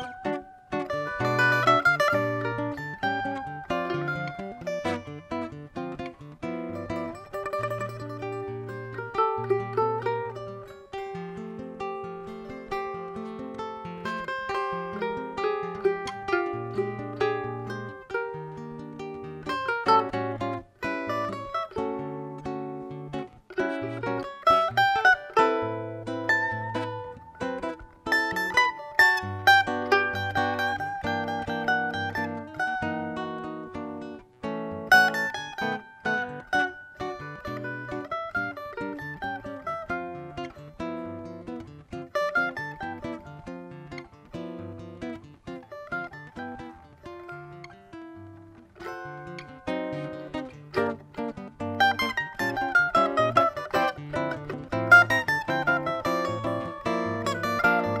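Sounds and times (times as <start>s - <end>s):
cavaquinho plucked melody: 0.0s - 58.0s.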